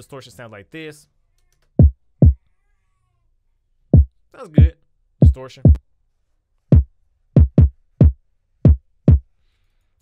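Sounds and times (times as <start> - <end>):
distorted kick drum hits: 6.8 - 9.2.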